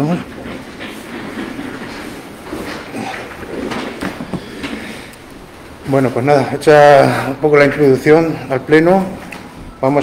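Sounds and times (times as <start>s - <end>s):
chairs scraping: 0.0s - 10.0s.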